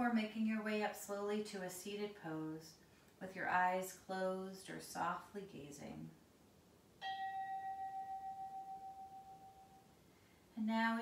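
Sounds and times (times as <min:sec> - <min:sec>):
bell tone ringing: 0:07.0 - 0:09.9.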